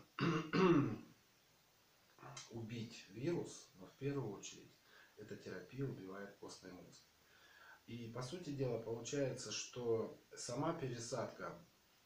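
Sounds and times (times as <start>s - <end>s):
man clearing throat: 0.2s - 1.1s.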